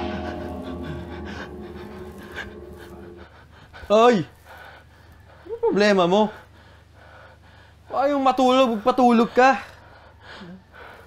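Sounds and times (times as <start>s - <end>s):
low musical drone: 0.0s - 3.8s
person panting heavily: 0.6s - 5.6s, 6.3s - 7.9s, 9.7s - 11.0s.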